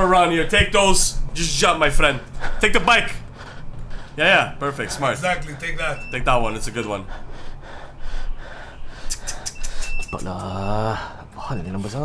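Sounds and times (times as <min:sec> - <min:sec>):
sharp gasping breaths: 0:02.2 - 0:04.2, 0:07.0 - 0:10.1
person breathing hard: 0:02.3 - 0:04.2, 0:07.0 - 0:10.0.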